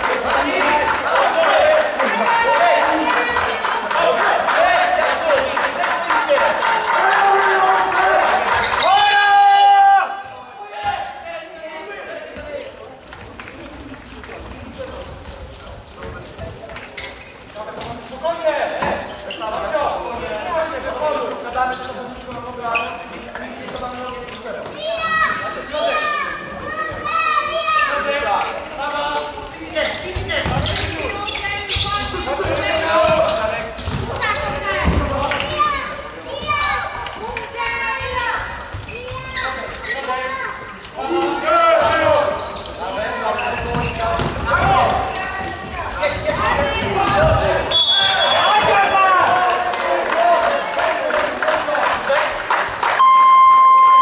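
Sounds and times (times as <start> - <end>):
players shouting: 0.0 - 11.3
ball kicked and bouncing on court: 30.1 - 30.9, 31.7 - 35.2, 43.6 - 47.6.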